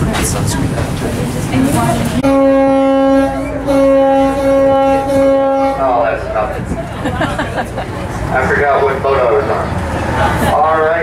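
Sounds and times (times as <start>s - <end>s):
boat horn blasts: 2.2s - 6.5s.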